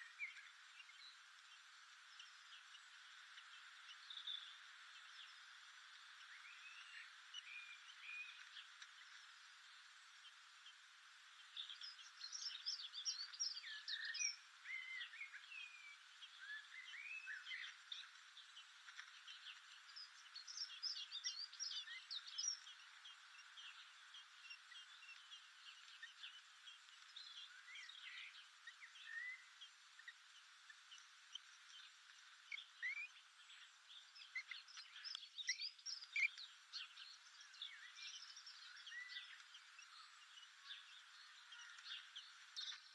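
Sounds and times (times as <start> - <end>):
bird chirps and twittering song: 0.0 - 42.9
steady low hiss: 0.0 - 42.9.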